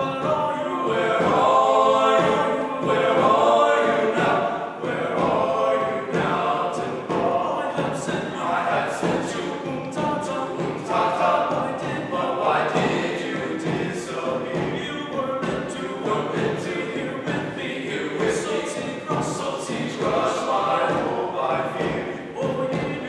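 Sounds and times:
men singing in harmony: 0.0 - 23.0.

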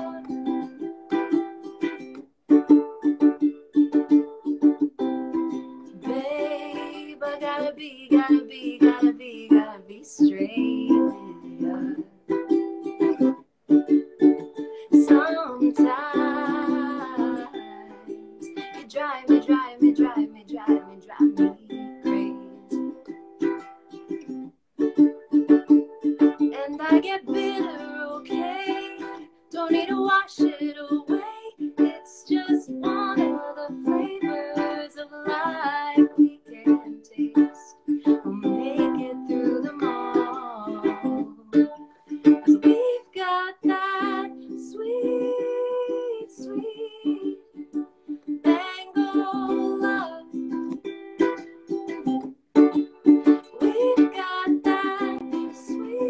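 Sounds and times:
woman singing: 0.0 - 0.7, 5.9 - 12.1, 14.7 - 23.0, 26.4 - 47.6, 48.3 - 50.8, 53.4 - 56.0
ukulele strumming: 0.0 - 56.0.

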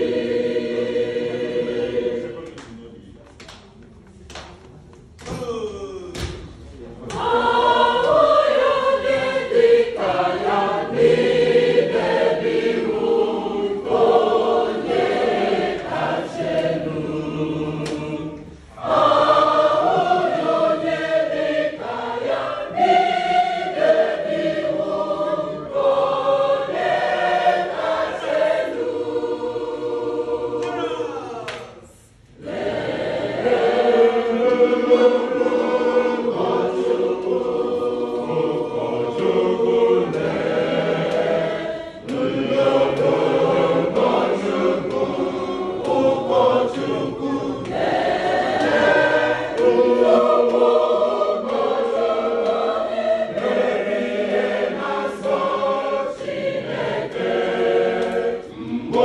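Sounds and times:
church choir singing a hymn: 0.0 - 2.9, 6.2 - 59.0.

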